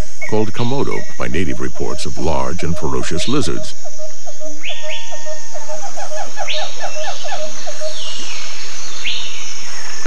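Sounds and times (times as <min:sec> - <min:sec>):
high insect drone: 0:00.0 - 0:10.0
higher animal calls: 0:00.3 - 0:08.6.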